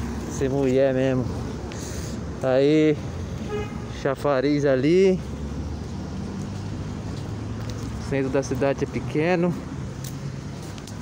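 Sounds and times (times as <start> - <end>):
road noise: 0.0 - 11.0
vehicle engine humming: 0.0 - 11.0.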